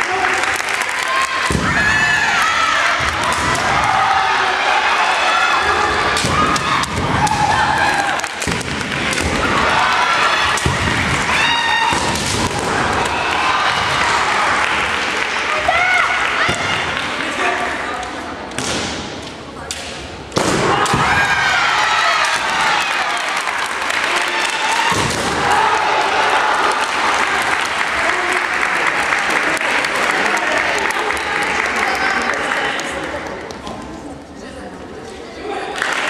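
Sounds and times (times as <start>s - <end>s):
spectators clapping: 0.0s - 5.2s, 6.6s - 18.0s, 21.4s - 33.6s, 35.7s - 36.0s.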